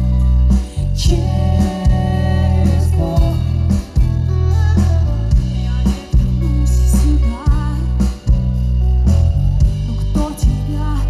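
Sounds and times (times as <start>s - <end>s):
pop band playing: 0.0s - 11.0s
woman singing into a microphone: 0.7s - 3.8s, 4.5s - 8.4s, 9.7s - 11.0s.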